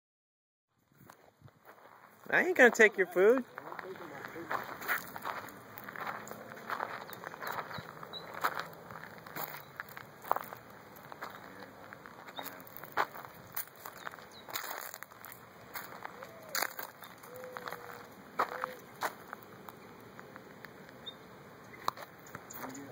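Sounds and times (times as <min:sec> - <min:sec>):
footsteps on dry leaves and gravel: 0:00.9 - 0:20.6.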